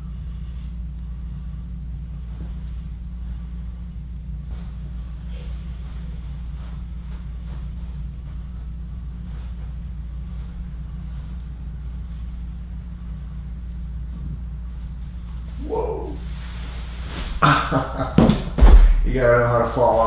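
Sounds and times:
steady low hum: 0:00.0 - 0:20.0
heavy low thump: 0:18.1 - 0:19.4.

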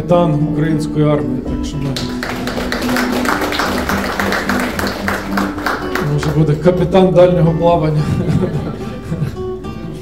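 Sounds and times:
crowd applauding: 0:01.8 - 0:07.3.

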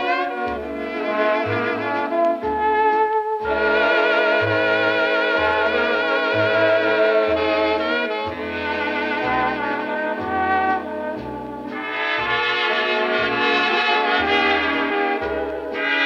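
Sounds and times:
brass section playing a tune: 0:00.0 - 0:16.0
string bass: 0:00.0 - 0:16.0.

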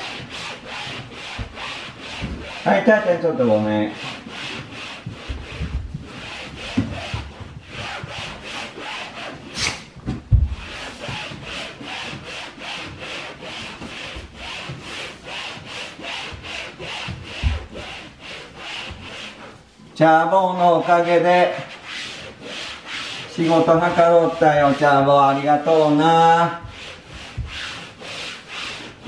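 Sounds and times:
damp cloth scrubbing a wall: 0:00.0 - 0:29.0
dull thumps: 0:01.0 - 0:02.6, 0:04.9 - 0:09.0, 0:09.6 - 0:14.9, 0:16.1 - 0:18.1, 0:26.5 - 0:27.9.

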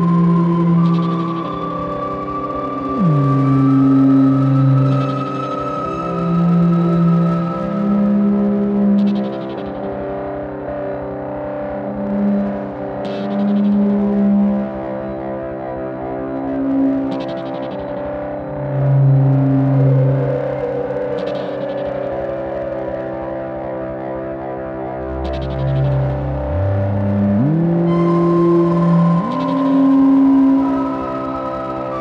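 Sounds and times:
synthesizer drone: 0:00.0 - 0:32.0
synth bass notes: 0:25.2 - 0:32.0.

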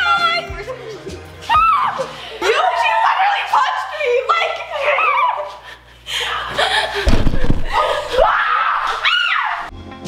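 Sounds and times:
girl screaming playfully: 0:01.5 - 0:05.5, 0:07.7 - 0:09.7.

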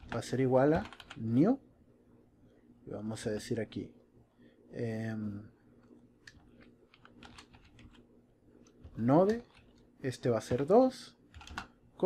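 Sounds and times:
computer keyboard typing: 0:00.0 - 0:01.2, 0:06.3 - 0:11.8.

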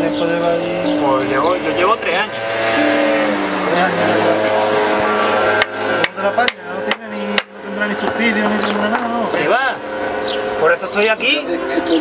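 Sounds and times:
held pitched tone shifting notes: 0:00.0 - 0:12.0
hammer blow on wood: 0:02.3 - 0:07.6.

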